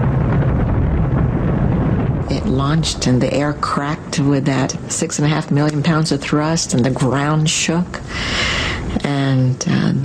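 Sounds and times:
rocket engines deep rumble: 0:00.0 - 0:10.0.

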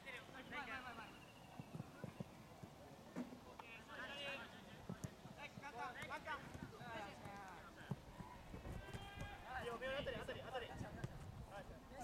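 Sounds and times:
faint soft low thuds: 0:10.0 - 0:11.5.

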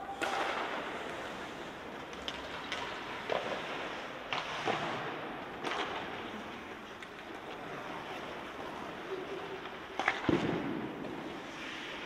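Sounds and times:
hockey stick hitting puck: 0:00.0 - 0:07.5, 0:09.9 - 0:12.0
skates scraping on ice: 0:00.1 - 0:12.0.

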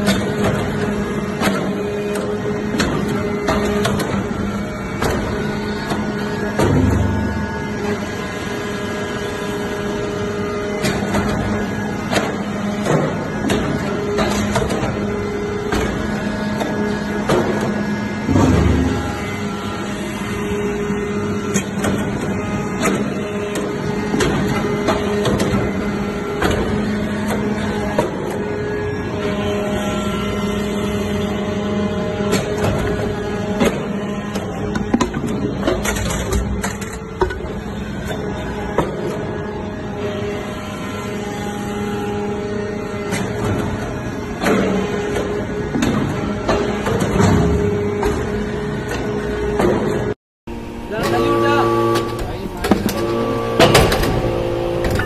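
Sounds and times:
hydraulic unit humming: 0:00.0 - 0:55.0.

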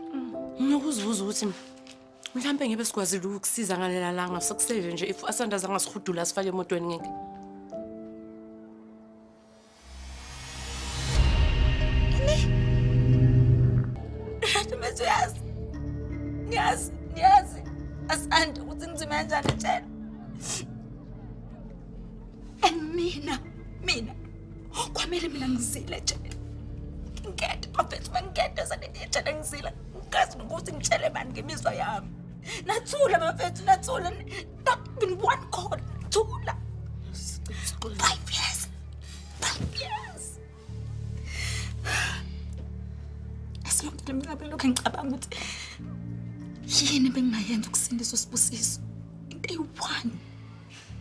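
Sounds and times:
low background music: 0:00.0 - 0:51.0.

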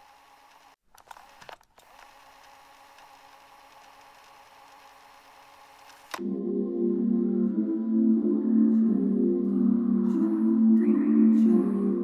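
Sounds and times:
steady low hum: 0:06.2 - 0:12.0.

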